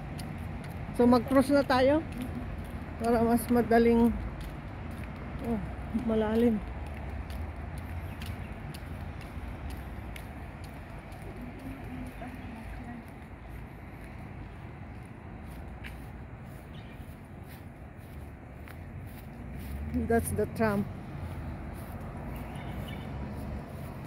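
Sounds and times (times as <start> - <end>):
distant traffic hum: 0.0 - 24.0.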